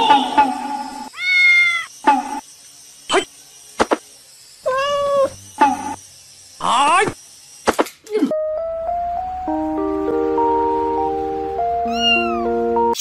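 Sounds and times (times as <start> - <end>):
kitten meowing: 1.1 - 1.9, 11.8 - 12.5.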